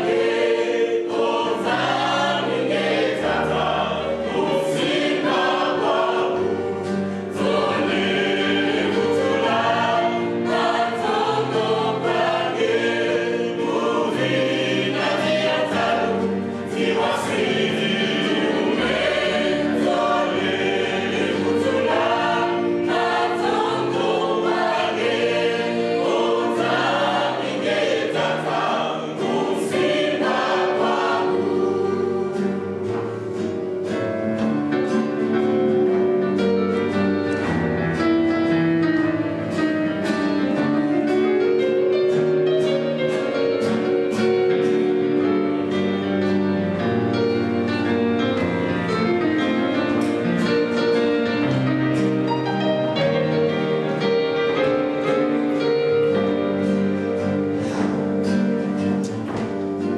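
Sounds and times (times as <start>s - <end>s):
gospel choir singing: 0.0s - 59.9s.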